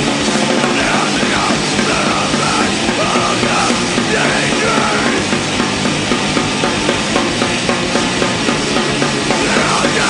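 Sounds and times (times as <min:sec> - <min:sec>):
distorted bass: 0:00.0 - 0:10.0
distorted guitar riff: 0:00.0 - 0:10.0
fast pounding drums: 0:00.0 - 0:10.0.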